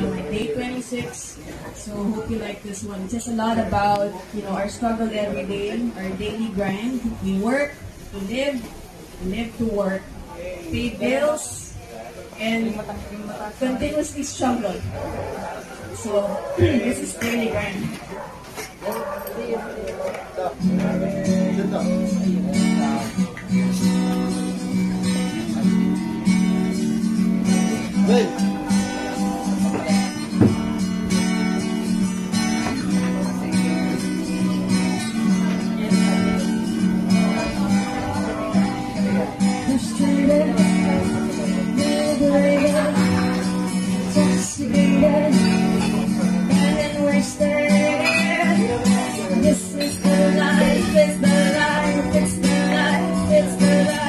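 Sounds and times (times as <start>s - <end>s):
acoustic guitar strumming: 0.0s - 11.8s, 12.4s - 54.0s.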